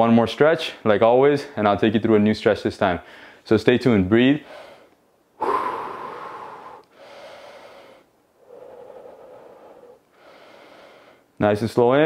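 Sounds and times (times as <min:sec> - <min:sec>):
man breathing deeply: 0:03.0 - 0:03.4, 0:04.4 - 0:11.4.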